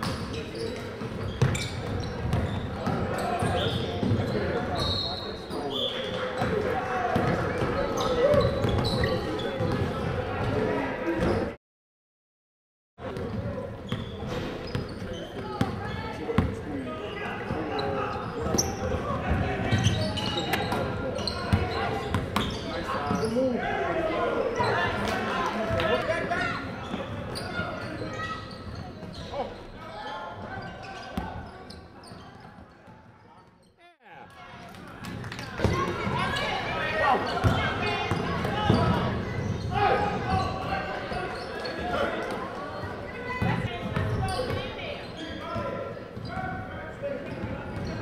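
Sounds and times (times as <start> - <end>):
echoing voices in gym: 0.0 - 11.6, 13.0 - 48.0.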